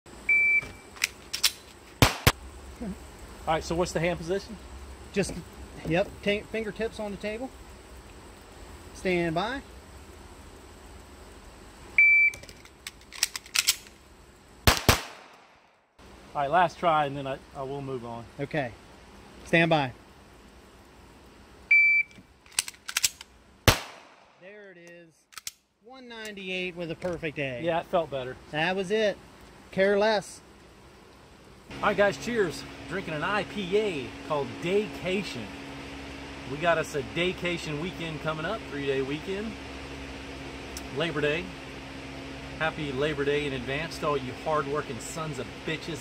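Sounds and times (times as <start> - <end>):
pistol handling clicks and knocks: 1.0 - 2.3, 12.4 - 14.0, 22.1 - 23.3, 25.3 - 25.6
loud pistol shot: 2.0 - 2.4, 14.7 - 15.7, 23.7 - 24.4
shot timer beep: 21.7 - 22.2.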